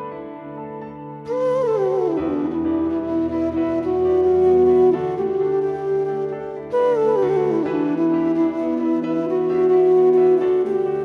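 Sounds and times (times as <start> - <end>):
bamboo flute melody: 0.0 - 11.0
soft instrumental accompaniment: 0.0 - 11.0.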